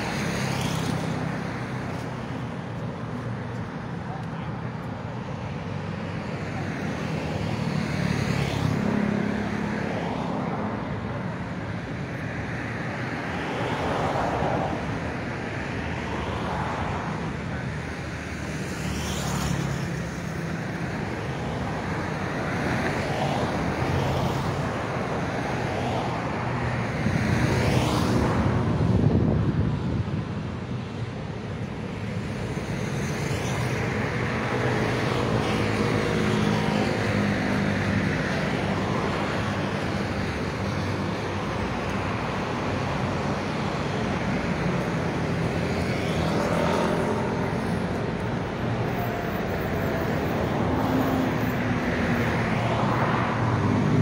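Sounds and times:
cars passing by: 0.0 - 54.0.

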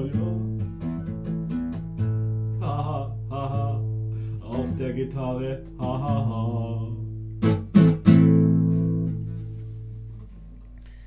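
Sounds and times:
classical guitar playing: 0.0 - 11.0.

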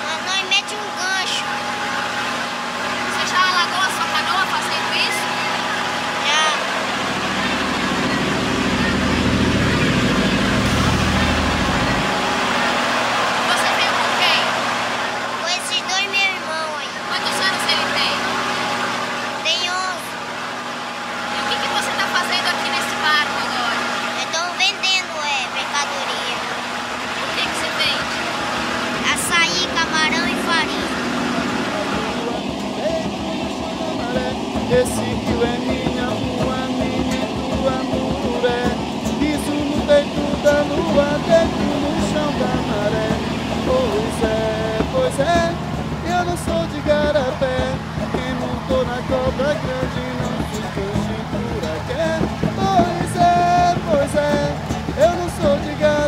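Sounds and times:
boat engine running: 0.0 - 56.0
heavy low rumble: 0.0 - 56.0
water rushing along hull: 0.0 - 56.0.

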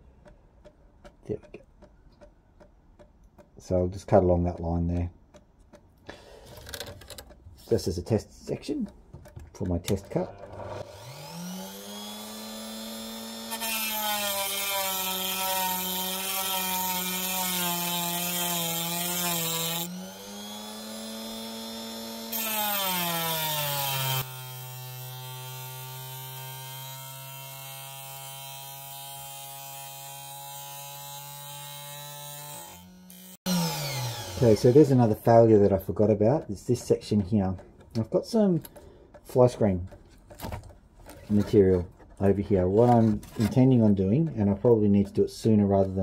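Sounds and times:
disc grinding into stone: 10.0 - 12.3
rotary tool motor humming: 10.4 - 34.9.

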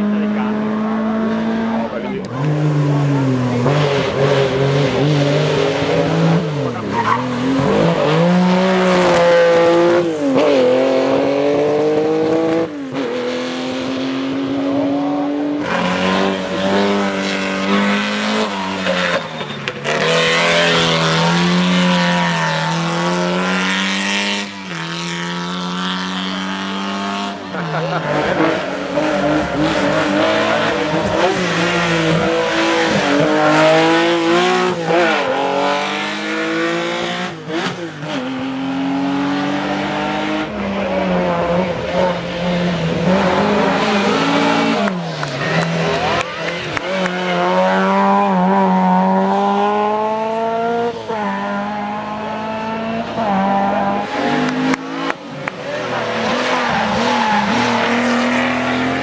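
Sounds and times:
rally cars revving hard: 0.0 - 59.0.

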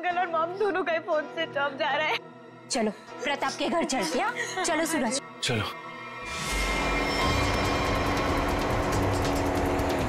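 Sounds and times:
music with long held notes: 5.9 - 10.0
car engine driving: 6.6 - 10.0.

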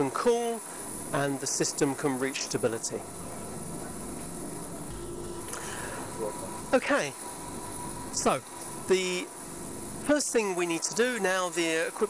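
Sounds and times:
faint high whine: 0.0 - 12.0
lab instrument hiss and hum: 0.0 - 12.0.

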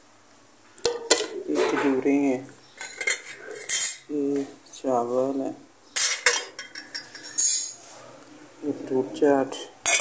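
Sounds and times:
spoons and dishes clinking: 2.8 - 4.0, 6.0 - 7.8.

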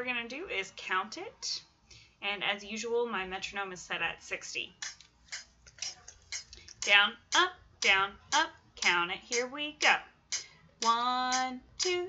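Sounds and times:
metronome ticking: 4.8 - 12.0.

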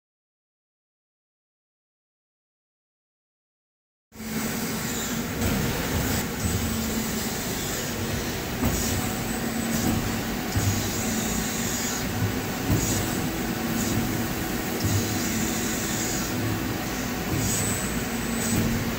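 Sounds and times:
machine humming and hissing: 4.2 - 18.9.

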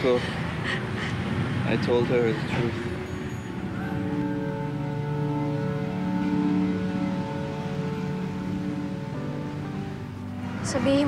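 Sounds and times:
music of slow held chords: 2.0 - 11.0.

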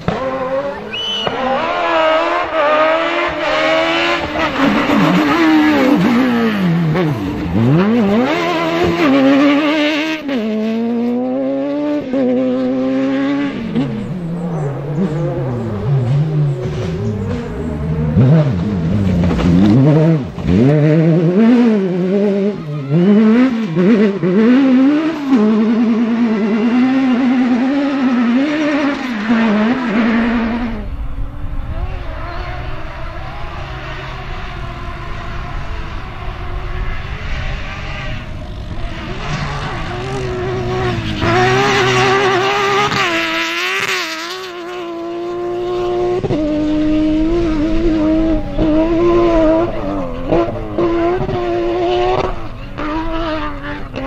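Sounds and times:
buggy engine wavering: 0.0 - 54.0
rally car engine revving: 0.0 - 54.0.

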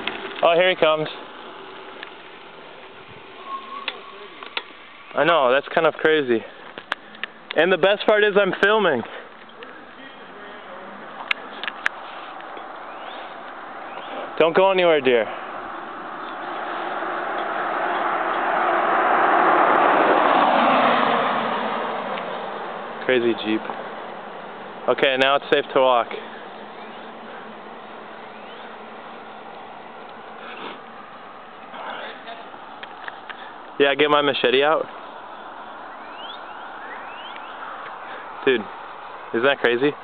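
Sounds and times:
outdoor background hiss: 0.0 - 40.0
car driving past: 11.0 - 24.9.

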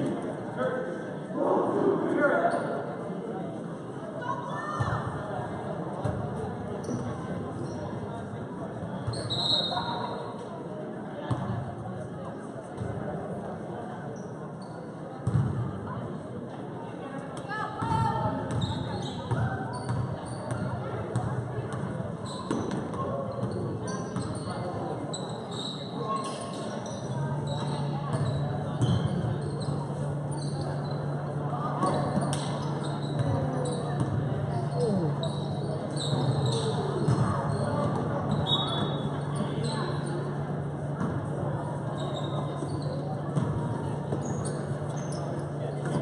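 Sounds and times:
basketball bouncing on court: 15.2 - 15.7, 17.8 - 24.4, 27.6 - 29.3, 31.8 - 34.3, 36.2 - 39.5.

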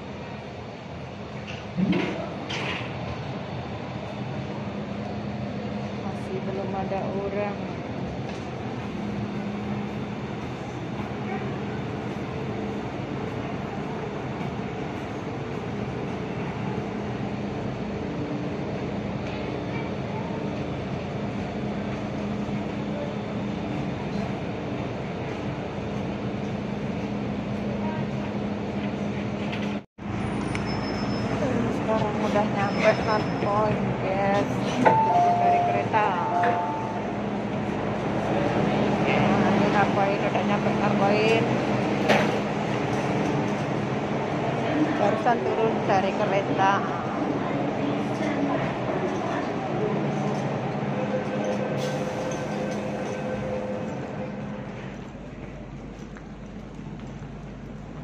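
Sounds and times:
metro train rumble: 0.0 - 58.0
voices: 5.8 - 8.5, 31.2 - 54.3.

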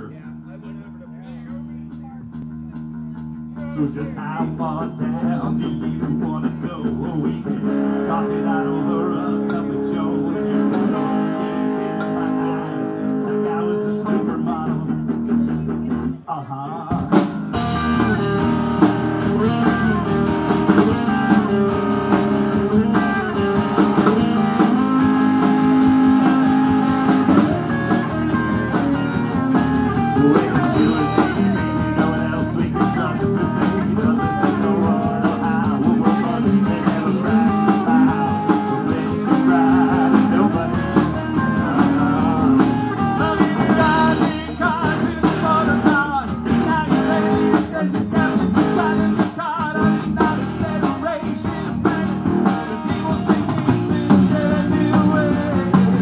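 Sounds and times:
drum kit: 1.4 - 16.1, 16.9 - 56.0
electric guitars: 1.7 - 56.0.

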